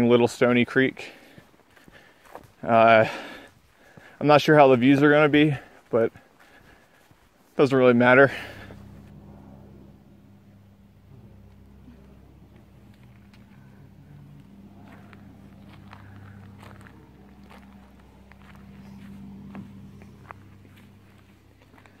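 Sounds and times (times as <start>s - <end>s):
faint low hum: 0.0s - 22.0s.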